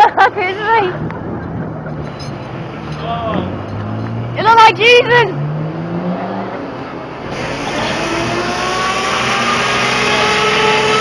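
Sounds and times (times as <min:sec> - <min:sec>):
engine running: 0:00.0 - 0:11.0.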